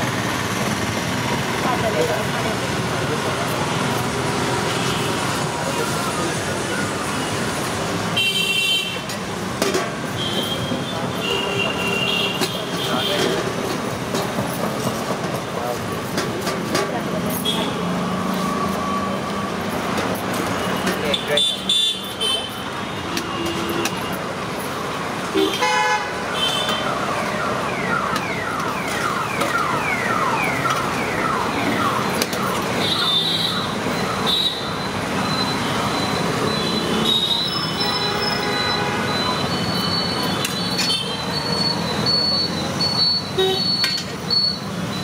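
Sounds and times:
passing traffic: 0.0s - 45.0s.

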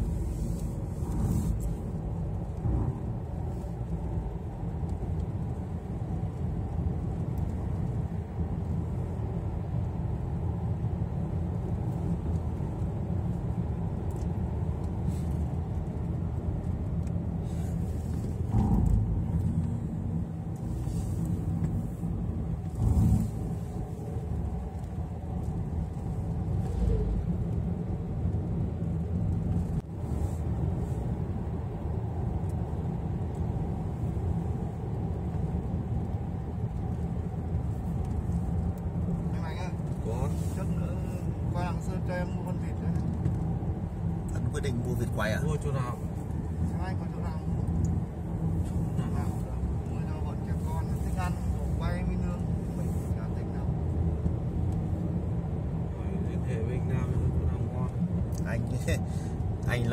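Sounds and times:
engine and tyre rumble: 0.0s - 59.9s.

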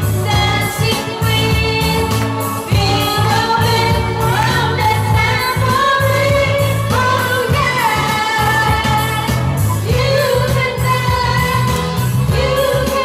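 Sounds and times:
backing track with bass beat: 0.0s - 13.0s
woman singing karaoke: 0.0s - 13.0s.

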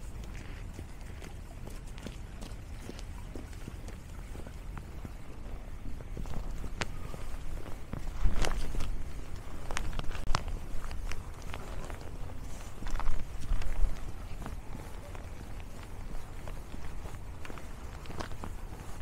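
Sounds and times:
footsteps crunching on snow: 0.0s - 19.0s.

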